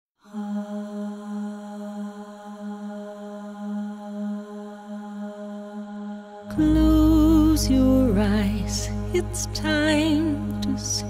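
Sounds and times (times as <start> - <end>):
low sustained drone: 6.5 - 11.0.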